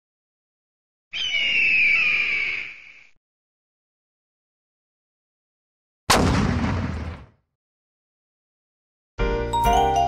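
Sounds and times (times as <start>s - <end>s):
eagle screech: 1.1s - 3.0s.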